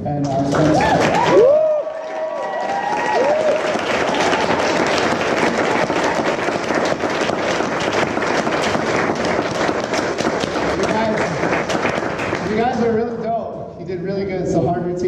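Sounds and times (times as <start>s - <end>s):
crowd applauding: 0.2s - 13.1s
people whooping: 0.7s - 7.7s.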